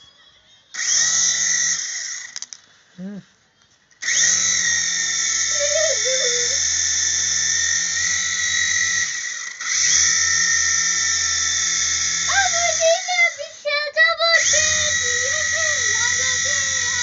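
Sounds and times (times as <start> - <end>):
toy helicopter motor whine: 0.7 - 2.6, 3.9 - 17.0.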